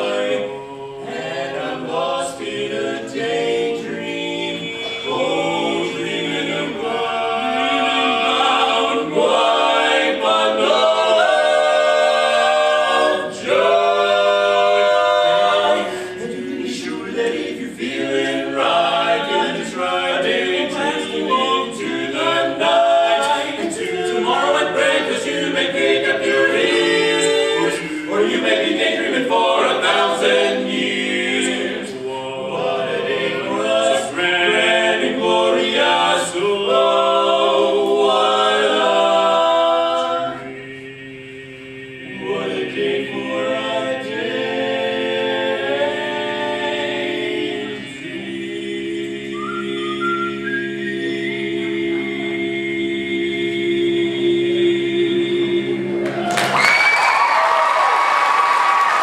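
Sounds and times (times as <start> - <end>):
male quartet singing a cappella: 0.0 - 56.2.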